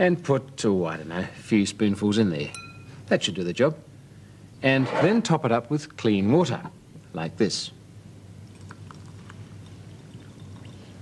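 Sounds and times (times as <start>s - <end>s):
water trickling into glass: 8.4s - 11.0s.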